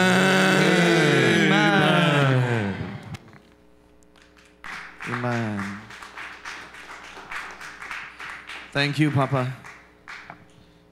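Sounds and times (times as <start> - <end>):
voices: 0.0 - 3.2.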